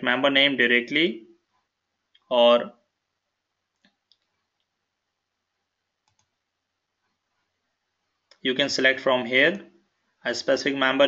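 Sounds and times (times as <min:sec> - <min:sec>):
faint computer mouse clicks: 0:06.0 - 0:06.4.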